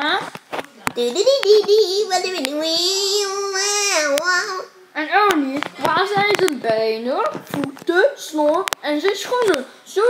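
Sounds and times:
person speaking: 0:00.0 - 0:09.9.

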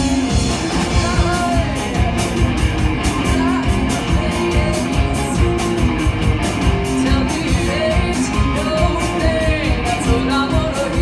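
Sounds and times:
drums keeping a steady beat: 0:00.0 - 0:11.0
electric guitars: 0:00.0 - 0:11.0
live rock band playing: 0:00.0 - 0:11.0.

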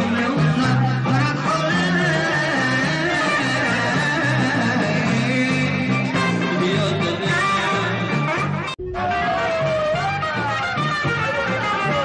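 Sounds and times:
band playing bass and guitar: 0:00.0 - 0:12.0
man singing into a microphone: 0:00.0 - 0:12.0.

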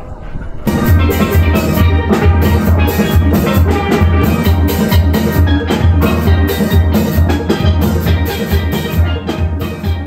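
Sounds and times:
deep bass pans beat: 0:00.6 - 0:10.0
steel band playing: 0:00.6 - 0:10.0
steel pans ringing melody: 0:00.7 - 0:10.0.

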